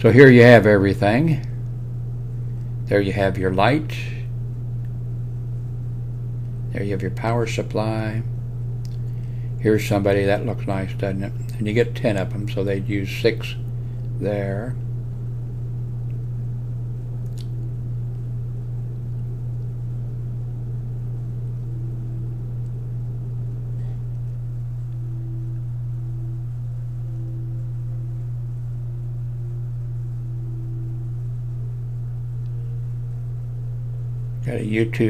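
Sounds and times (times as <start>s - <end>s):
steady low hum: 0.0s - 35.0s
faint click: 17.2s - 18.3s.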